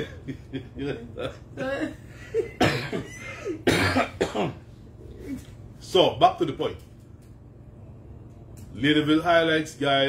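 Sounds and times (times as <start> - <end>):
person laughing: 0.0 - 3.6
person coughing: 1.2 - 4.7.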